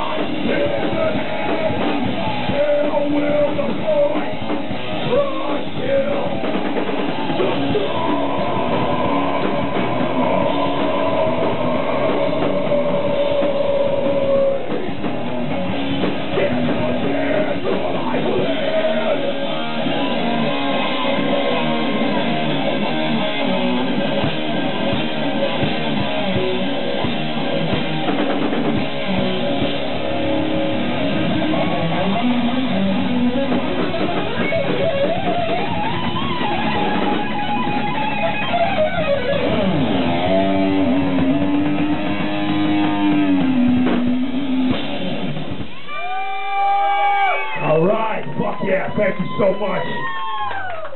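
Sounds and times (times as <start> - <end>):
live heavy metal band: 0.0 - 50.7
loud electric guitar: 0.0 - 50.9.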